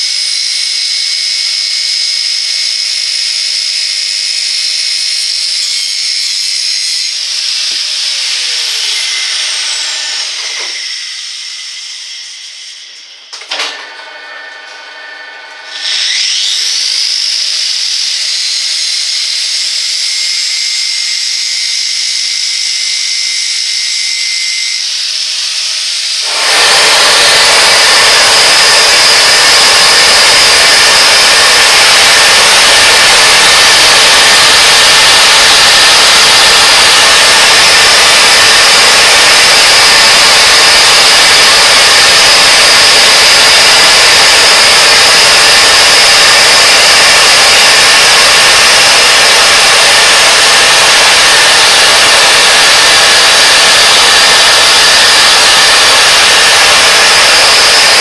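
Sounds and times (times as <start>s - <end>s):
grinder whining: 0.0s - 58.0s
flame-spray torch hissing: 26.2s - 58.0s.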